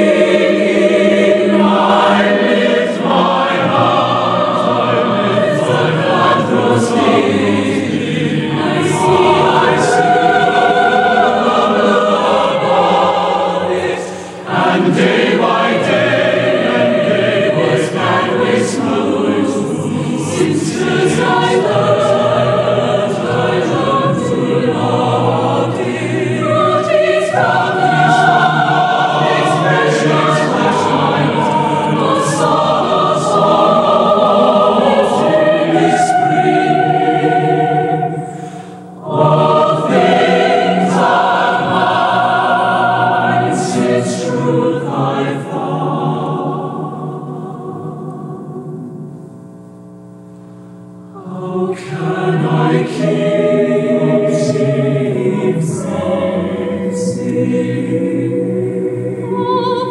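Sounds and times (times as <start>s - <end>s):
mixed choir singing: 0.0s - 48.8s, 51.2s - 59.9s.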